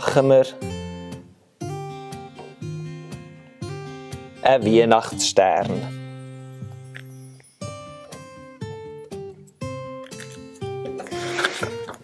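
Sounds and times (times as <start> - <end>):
acoustic guitar picking: 0.6 - 12.0.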